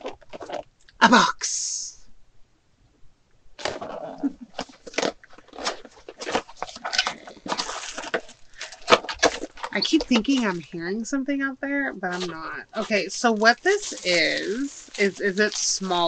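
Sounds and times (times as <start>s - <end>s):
cardboard box rustling and crinkling: 0.0s - 0.7s, 3.6s - 10.8s, 12.1s - 16.0s.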